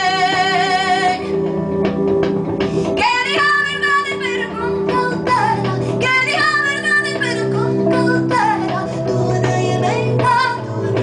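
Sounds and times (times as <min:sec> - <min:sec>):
woman singing with vibrato: 0:00.0 - 0:01.4, 0:03.0 - 0:11.0
instrumental accompaniment low notes: 0:00.0 - 0:11.0.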